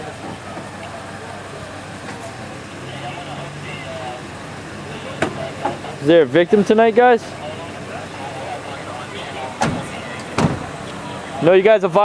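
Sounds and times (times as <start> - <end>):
faint distant voices: 0.0 - 12.0
low traffic hum: 0.0 - 12.0.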